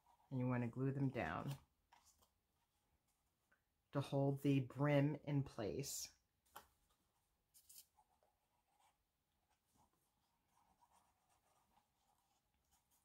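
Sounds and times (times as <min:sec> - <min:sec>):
cardstock rustling and scraping: 0:06.5 - 0:08.2.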